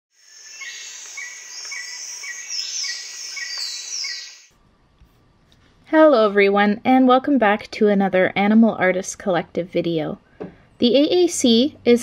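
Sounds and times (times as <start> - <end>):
high insect buzz: 0.1 - 4.5.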